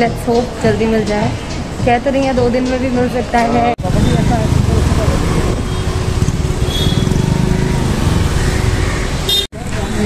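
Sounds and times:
scooter engine and road rumble: 0.0 - 10.0
street traffic: 0.0 - 10.0.

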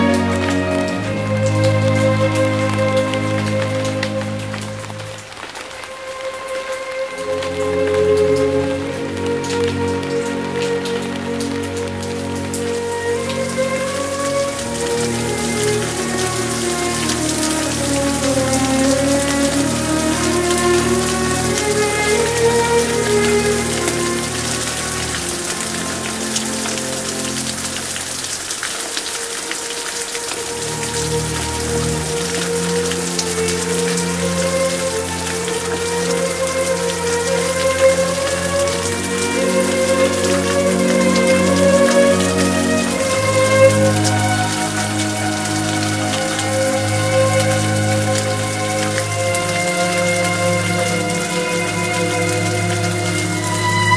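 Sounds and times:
soft slow music: 0.0 - 53.9
steady rain falling: 0.0 - 53.9.

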